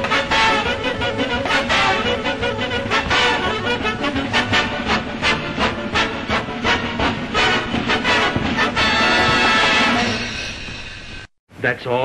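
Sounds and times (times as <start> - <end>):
dance band playing hot jazz: 0.0 - 10.4.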